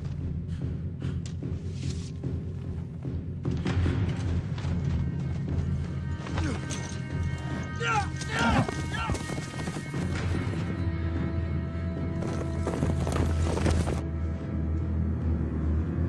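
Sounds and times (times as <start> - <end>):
dramatic film score with drone: 0.0 - 16.0
galloping horse hooves: 1.6 - 14.1
man shouting: 7.8 - 9.3.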